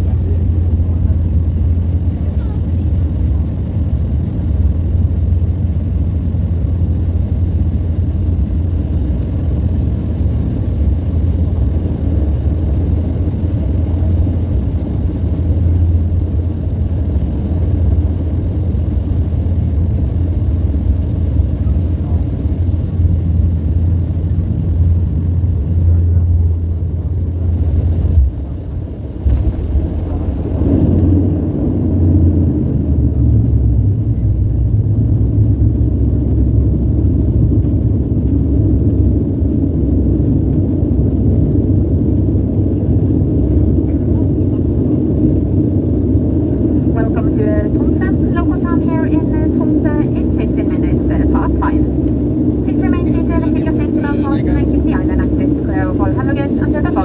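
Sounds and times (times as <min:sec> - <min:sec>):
airplane engine drone: 0:00.0 - 0:57.0
faint high engine whine: 0:00.0 - 0:57.0
rough roar of plane slowing: 0:00.0 - 0:57.0
cabin announcement over loudspeaker: 0:47.0 - 0:52.0, 0:52.6 - 0:57.0.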